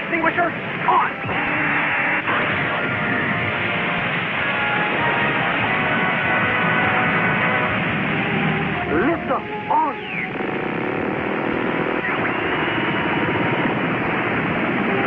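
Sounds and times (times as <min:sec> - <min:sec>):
background music with held notes: 0:00.0 - 0:15.0.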